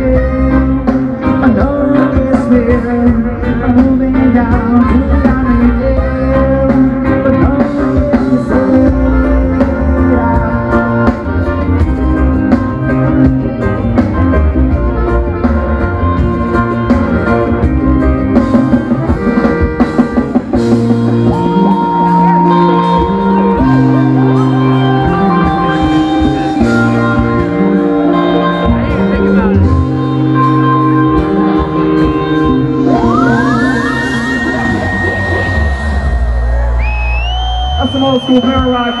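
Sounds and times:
drum kit: 0:00.0 - 0:39.0
electric guitar: 0:00.0 - 0:39.0
reggae rock band playing: 0:00.0 - 0:39.0
long held high note: 0:32.7 - 0:39.0
siren-like effect sweeping up: 0:32.8 - 0:39.0.

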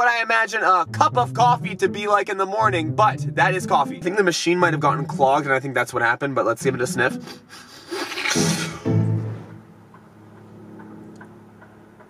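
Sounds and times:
man sniffing through nose: 0:07.2 - 0:08.9.

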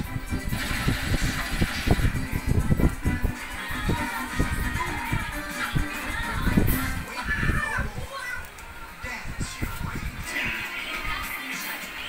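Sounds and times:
children's voices: 0:03.6 - 0:08.8.

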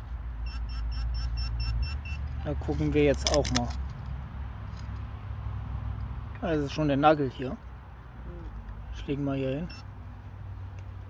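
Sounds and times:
metal detector rapid beeping: 0:00.4 - 0:02.5, 0:09.6 - 0:09.9.

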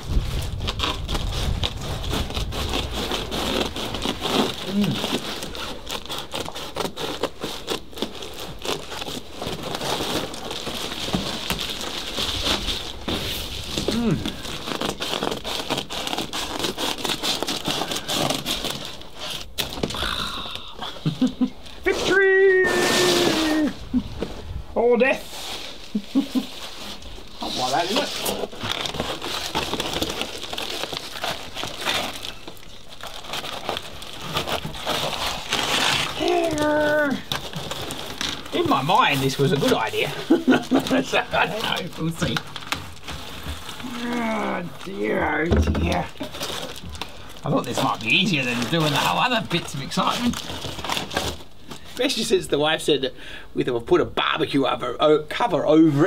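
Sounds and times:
bubble insulation crinkling: 0:00.0 - 0:56.0.

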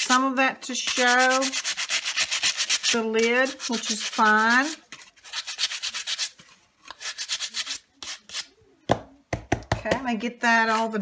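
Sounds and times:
paper rubbing over dried paint: 0:00.8 - 0:06.4.

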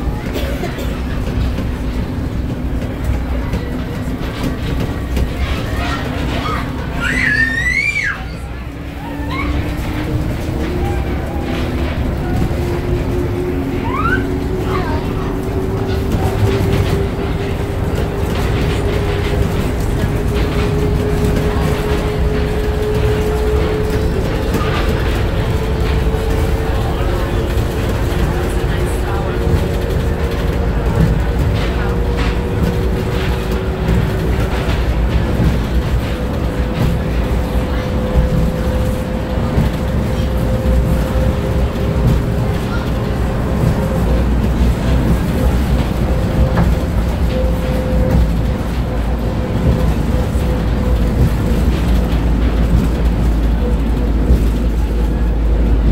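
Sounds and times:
train low rumble: 0:00.0 - 0:55.9.

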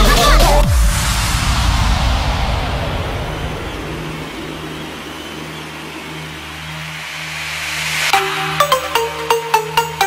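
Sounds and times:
white-noise sweep: 0:00.3 - 0:09.2.

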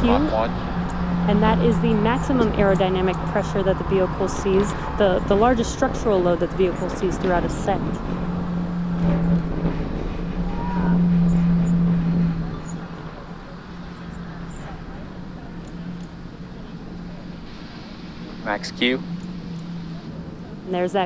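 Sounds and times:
distant rocket rumble: 0:00.0 - 0:21.0.

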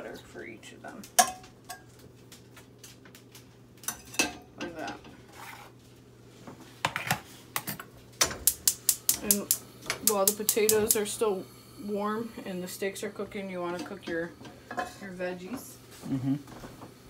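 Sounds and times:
gas stove igniter clicking: 0:08.2 - 0:11.3.

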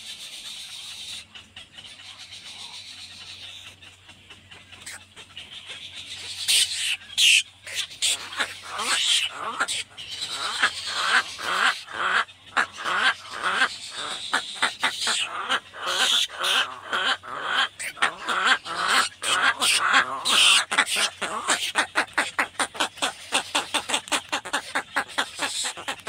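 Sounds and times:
bird chicks clicking calls: 0:00.5 - 0:26.0.

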